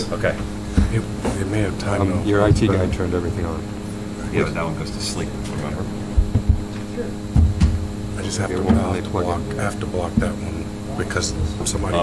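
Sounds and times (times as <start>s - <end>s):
electrical mains hum: 0.0s - 12.0s
low thuds of bumps: 6.1s - 6.7s.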